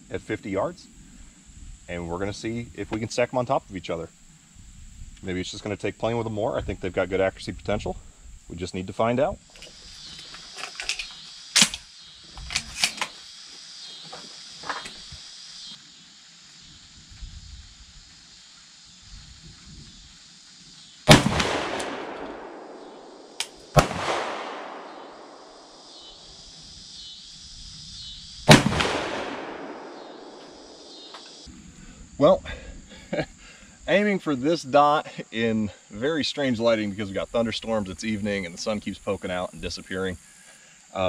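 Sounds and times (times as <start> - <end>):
insects hissing: 0.0 - 41.0
sharp crack: 10.6 - 13.2, 21.1 - 26.3, 28.4 - 31.5
shotgun shots echoing: 21.1 - 26.2, 28.5 - 31.4.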